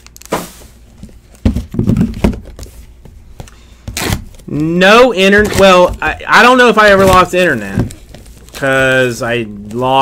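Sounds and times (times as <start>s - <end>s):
cardboard boxes knocking: 1.4s - 3.2s.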